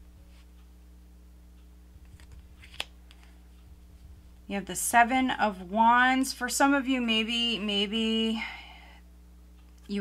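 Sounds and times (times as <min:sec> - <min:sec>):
card clicking against card: 0:02.1 - 0:03.3
cards rustling: 0:02.1 - 0:03.3.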